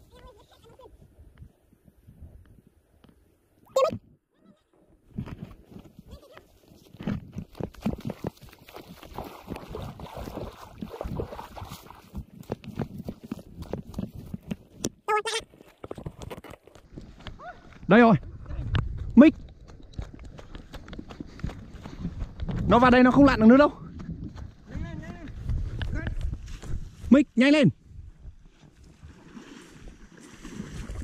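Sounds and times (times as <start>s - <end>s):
footsteps on grass and mud: 5.1s - 14.8s, 15.5s - 27.1s
splashing: 7.4s - 14.4s, 28.8s - 31.0s.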